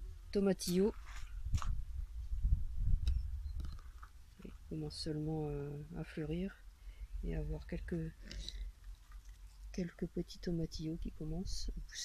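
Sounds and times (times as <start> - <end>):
camera handling rumble: 3.0 - 4.2.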